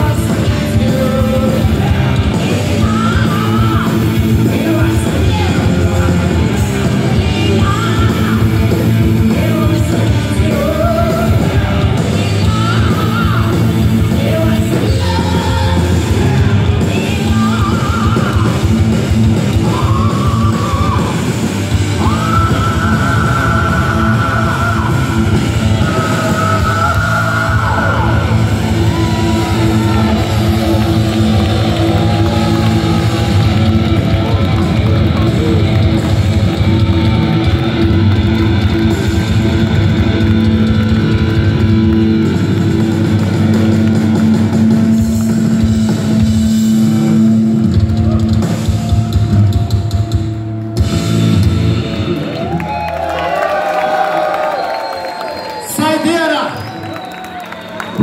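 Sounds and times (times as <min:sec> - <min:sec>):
drum kit: 0:00.0 - 0:54.7
bass guitar: 0:00.0 - 0:58.0
distorted electric guitars: 0:00.0 - 0:58.0.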